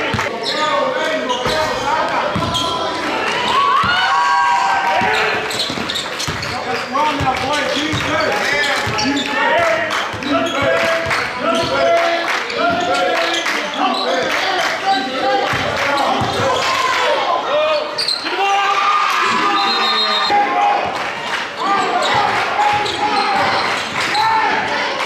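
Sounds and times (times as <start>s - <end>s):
chatter of voices: 0.0s - 25.0s.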